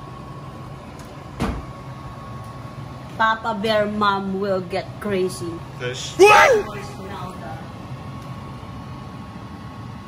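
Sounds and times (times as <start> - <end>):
faint high tone: 6.2 - 6.8.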